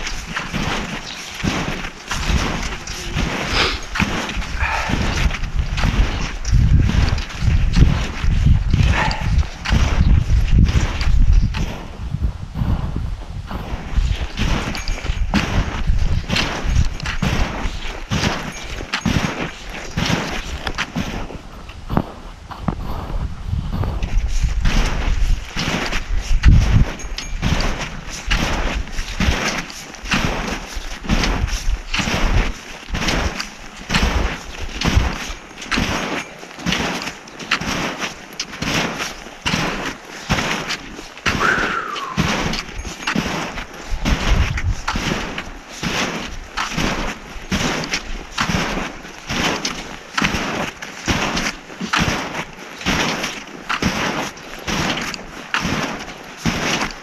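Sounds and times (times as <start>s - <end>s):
footsteps in deep snow: 0.0s - 57.0s
wind rumbling on microphone: 0.0s - 57.0s.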